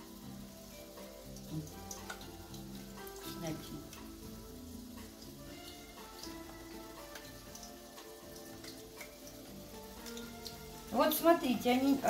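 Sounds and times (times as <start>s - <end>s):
faint music: 0.0s - 12.0s
oil crackling and popping in pan: 0.0s - 12.0s.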